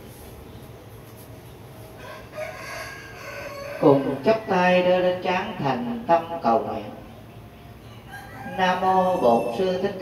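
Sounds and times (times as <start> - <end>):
rooster crowing: 2.0 - 4.9, 7.8 - 10.0.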